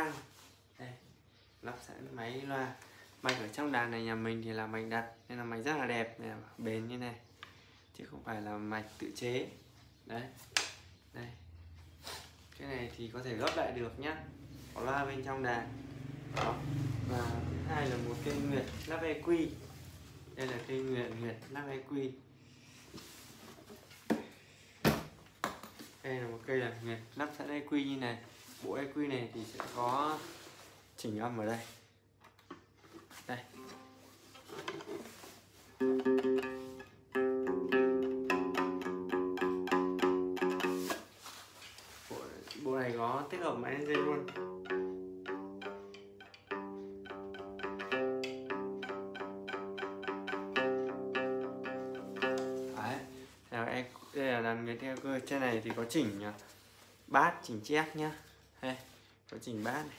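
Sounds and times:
plucked lute melody: 33.5s - 41.2s, 43.5s - 53.4s.

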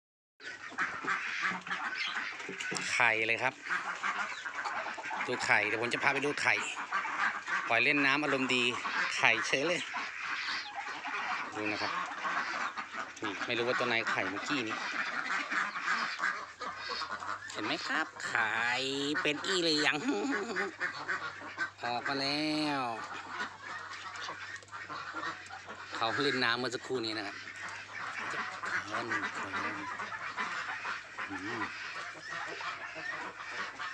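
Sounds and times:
ducks quacking: 0.4s - 33.9s
man speaking: 5.3s - 6.8s, 7.7s - 9.9s, 11.6s - 12.0s, 13.2s - 14.8s, 17.5s - 20.3s, 21.8s - 23.1s, 26.0s - 27.4s, 28.8s - 29.9s, 31.3s - 31.7s.

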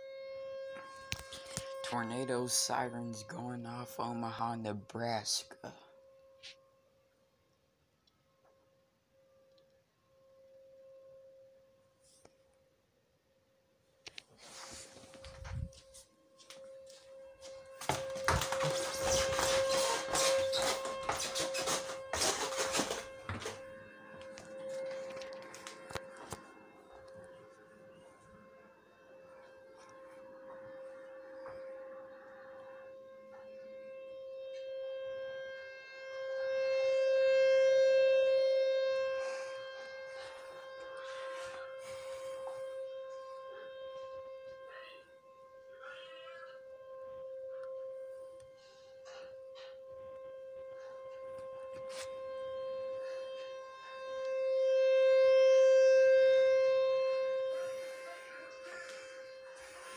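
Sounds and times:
muffled warning siren tone: 0.0s - 59.9s
loud rustling noise: 17.9s - 23.7s.

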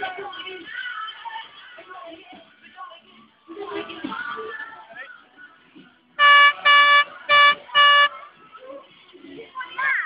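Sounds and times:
vehicle horn tooting: 6.2s - 8.2s.

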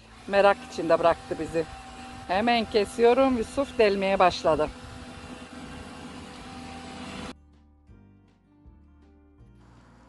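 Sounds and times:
electric drill running: 0.0s - 7.4s, 9.6s - 10.0s
soft music with held notes: 6.3s - 10.0s.

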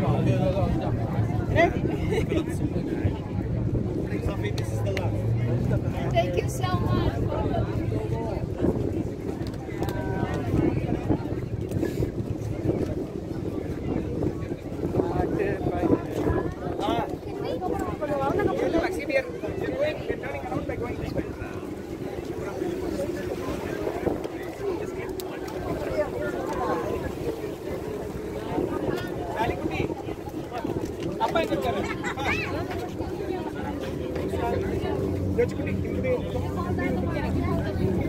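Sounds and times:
passengers chatting: 0.0s - 38.0s
people's voices: 0.0s - 38.0s
wind buffeting microphone: 0.0s - 38.0s
ferry engine rumble: 20.6s - 38.0s.

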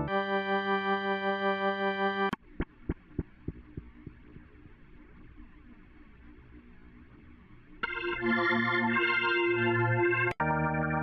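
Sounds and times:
organ pad low hum: 0.0s - 2.4s, 7.7s - 11.0s.

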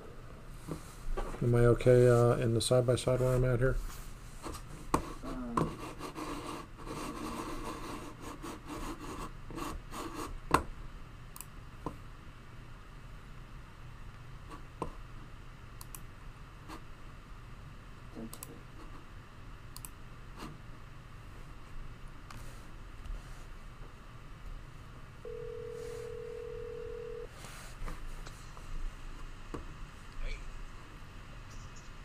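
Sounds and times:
faint background hum: 0.0s - 32.0s.

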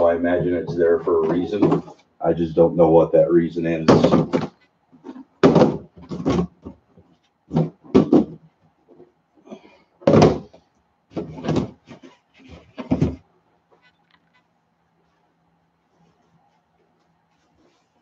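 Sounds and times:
plastic tubs knocking and scraping: 0.0s - 2.1s, 3.6s - 13.9s.

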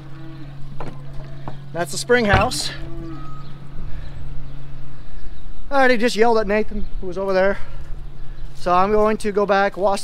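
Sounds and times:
low rumbling noise: 0.0s - 9.9s
steady low hum: 0.0s - 10.0s
man talking: 1.7s - 2.9s, 5.7s - 7.7s, 8.6s - 10.0s.

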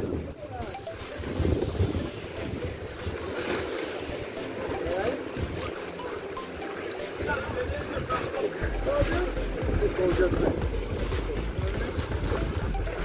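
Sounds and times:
wind rushing over microphone: 0.0s - 4.4s
sea water washing around boat: 0.0s - 13.0s.

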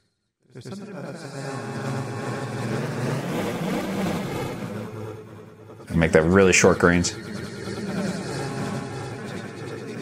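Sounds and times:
granular chopped voice fragments: 0.6s - 3.6s, 5.8s - 10.0s.

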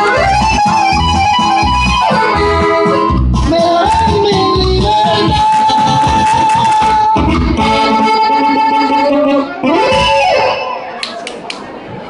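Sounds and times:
live band playing folk ballad: 0.0s - 11.2s.

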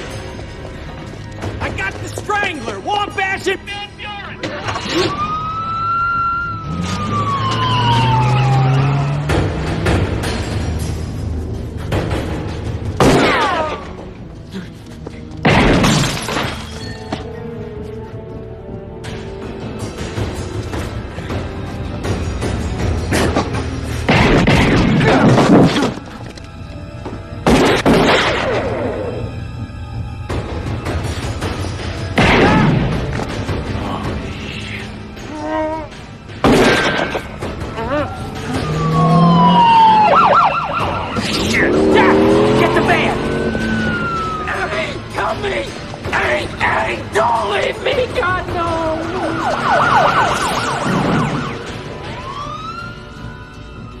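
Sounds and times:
tense film score: 0.0s - 54.0s
police siren wailing: 4.8s - 9.7s, 37.9s - 45.2s, 48.6s - 54.0s
glass shattering: 15.5s - 17.2s
car passing: 38.4s - 44.5s.

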